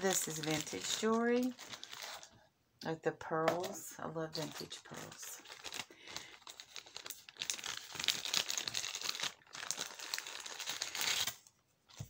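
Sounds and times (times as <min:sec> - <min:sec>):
small bag crinkling and rustling: 0:00.0 - 0:02.4, 0:03.6 - 0:12.0.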